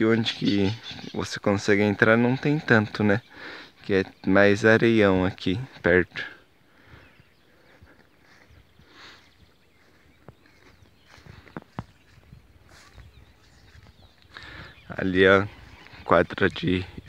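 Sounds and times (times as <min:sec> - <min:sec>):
distant bird calls: 0:00.0 - 0:17.0.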